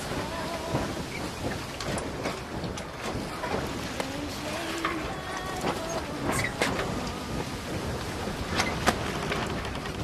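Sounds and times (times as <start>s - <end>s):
choppy water splashing: 0.0s - 10.0s
wind buffeting microphone: 0.0s - 10.0s.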